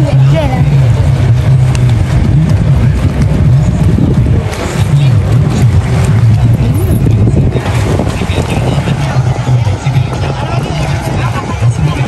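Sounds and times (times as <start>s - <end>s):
water noise: 0.0s - 12.0s
watercraft engine droning: 0.0s - 12.0s
wind noise: 0.0s - 12.0s.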